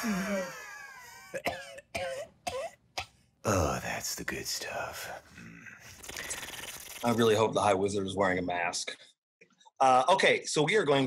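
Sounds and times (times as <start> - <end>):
person coughing: 1.2 - 2.8.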